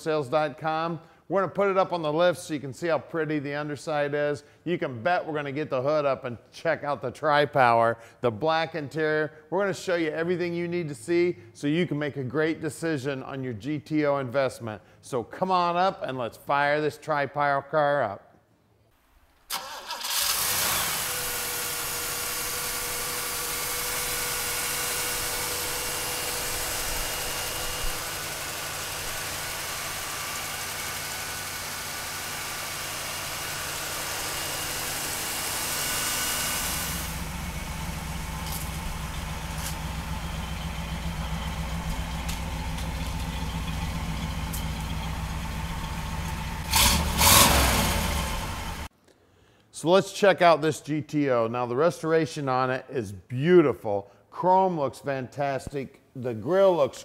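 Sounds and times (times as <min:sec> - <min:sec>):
engine throttle blips: 0:19.6 - 0:48.9
car engine idling: 0:20.3 - 0:48.9.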